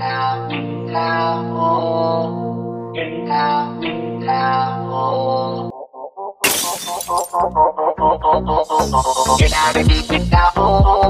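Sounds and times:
shattering crash sound effect: 0:06.4 - 0:07.4
meme music with bass beat: 0:08.0 - 0:11.0.

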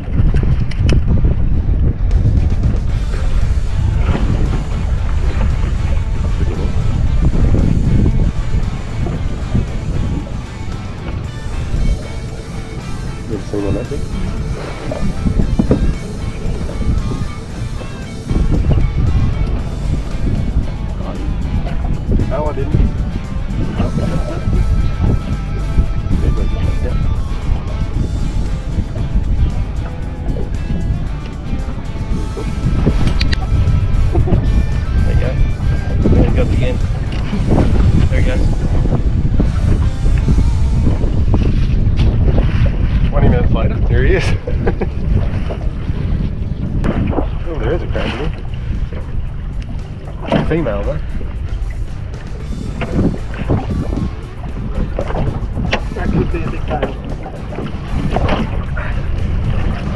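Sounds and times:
wind buffeting microphone: 0:00.0 - 0:59.9.

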